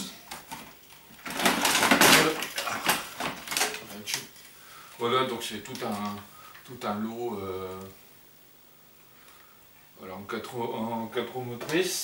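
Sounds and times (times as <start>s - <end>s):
plastic toy rustling and clattering: 0.0s - 4.5s.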